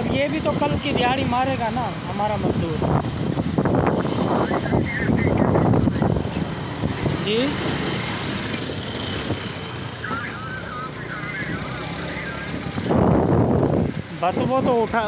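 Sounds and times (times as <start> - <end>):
motorcycle engine and road rumble: 0.0 - 15.0
wind on microphone: 2.3 - 9.6, 12.5 - 14.8.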